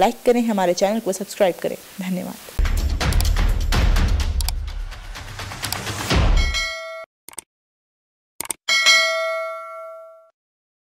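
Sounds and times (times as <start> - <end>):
clicks: 4.4 - 4.6, 8.4 - 8.6
bell-like ding: 6.4 - 7.1, 8.7 - 10.4.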